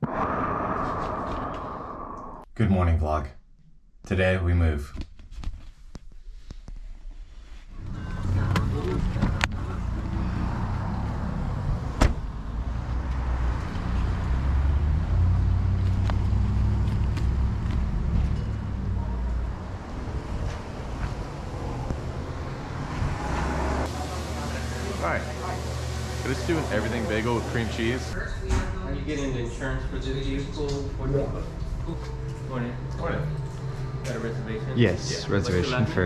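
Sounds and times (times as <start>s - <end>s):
street noise rumble: 7.8s - 36.0s.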